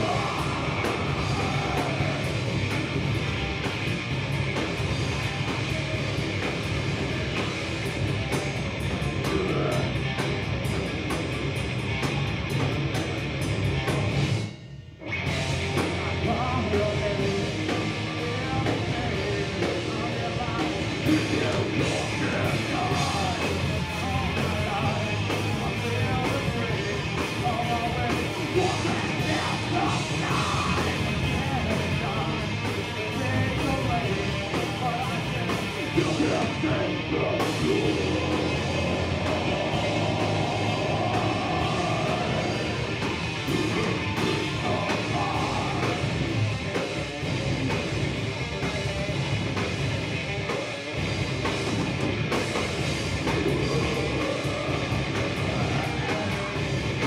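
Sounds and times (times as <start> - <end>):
bass guitar: 0.0 - 57.0
distorted electric guitars: 0.0 - 57.0
drum kit: 0.0 - 57.0.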